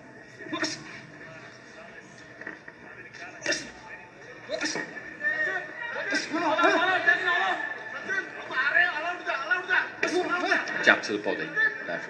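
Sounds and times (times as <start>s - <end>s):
boxing arena sound through tv speaker: 0.0s - 12.0s.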